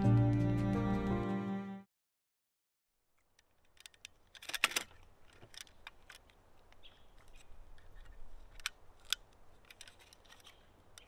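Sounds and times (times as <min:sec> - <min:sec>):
film magazine mechanical clicks: 0:03.2 - 0:11.0.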